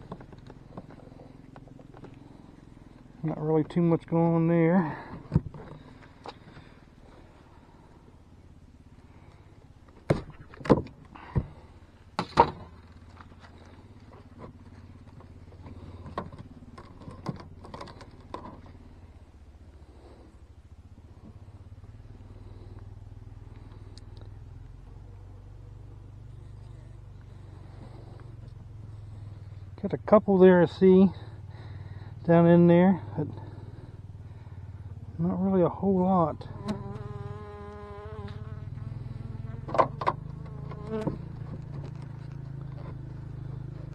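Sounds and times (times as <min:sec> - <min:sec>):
low steady hum: 0:00.0 - 0:43.9.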